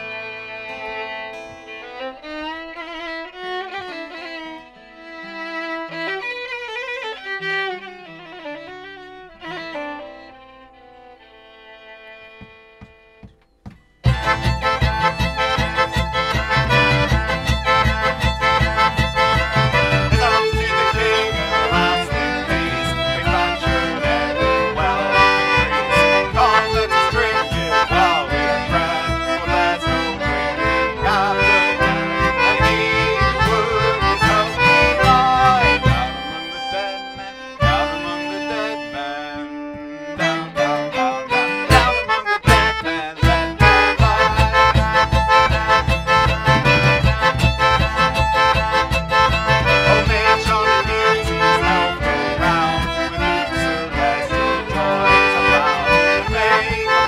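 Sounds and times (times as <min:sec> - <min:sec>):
bowed strings: 0:00.0 - 0:12.9, 0:14.0 - 0:57.0
folk band playing: 0:00.0 - 0:13.2, 0:14.0 - 0:57.0
hand drum steady beat: 0:13.7 - 0:36.2, 0:41.7 - 0:57.0.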